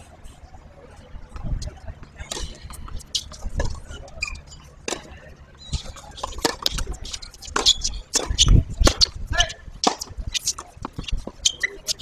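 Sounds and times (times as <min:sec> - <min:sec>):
background voices: 0:00.0 - 0:12.0
tennis ball bouncing on hard court: 0:05.7 - 0:09.1.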